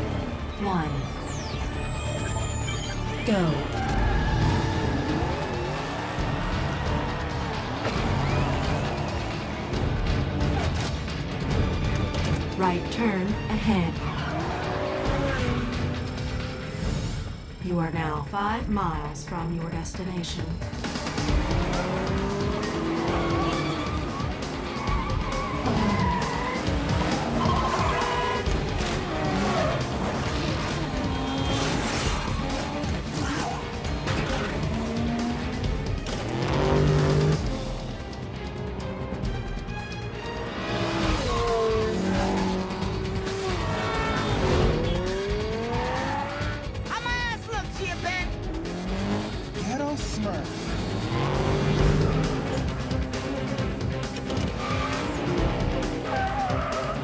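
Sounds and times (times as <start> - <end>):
racing car engines revving: 3.0 - 57.0
tyres squealing: 23.2 - 30.0.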